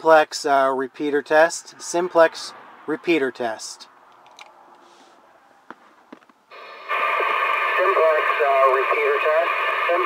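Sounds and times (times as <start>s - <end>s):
radio speaker hiss: 6.5s - 10.0s.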